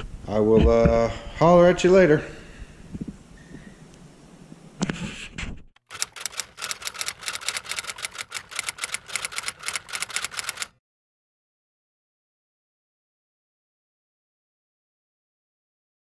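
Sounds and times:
typewriter keystroke clicks: 5.8 - 10.7.

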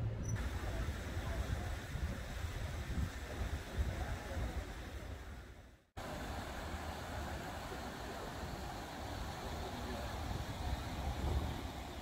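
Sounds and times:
wind rumbling on microphone: 0.0 - 5.6, 9.1 - 12.0.

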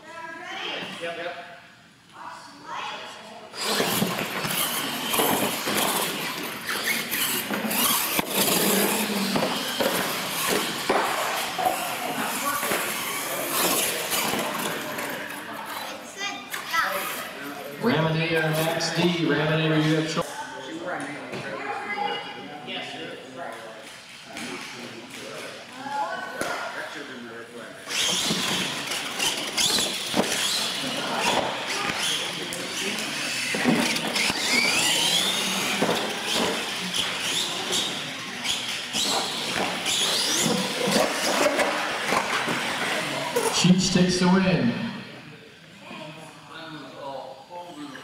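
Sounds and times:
toy truck motor whine: 3.6 - 15.0, 27.9 - 42.4
people talking: 11.6 - 27.7, 42.6 - 45.2.

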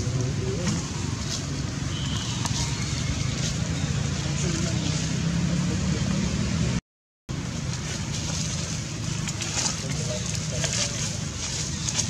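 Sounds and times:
low rumbling background noise: 0.0 - 12.0.

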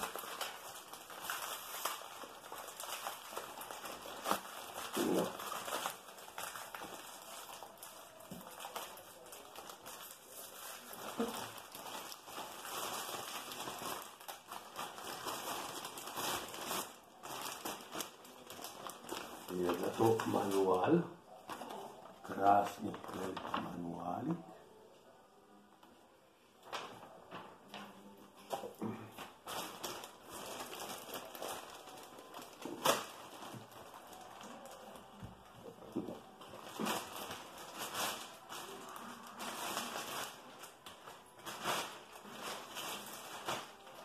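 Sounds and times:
plastic packaging crinkling: 0.0 - 24.4, 26.6 - 44.0.

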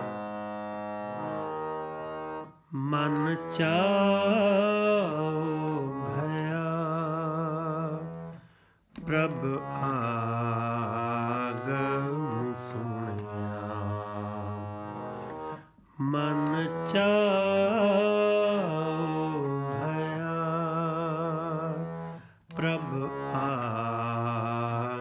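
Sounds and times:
harmonium drone and melody: 0.0 - 25.0
man singing: 2.7 - 8.4, 9.0 - 15.2, 15.9 - 25.0.

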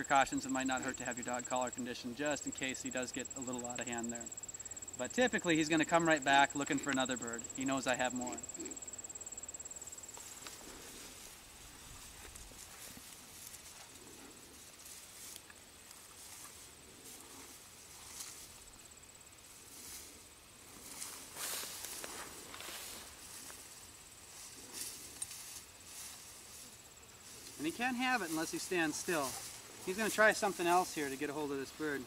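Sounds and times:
high-pitched insect trill: 0.0 - 32.0
rustling: 9.7 - 32.0.

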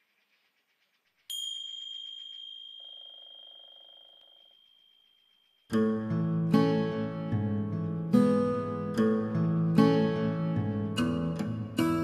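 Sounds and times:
high ding ringing: 1.3 - 5.7.

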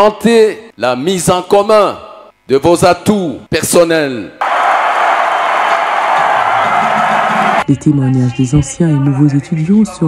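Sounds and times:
crowd cheering and clapping: 4.4 - 7.7.

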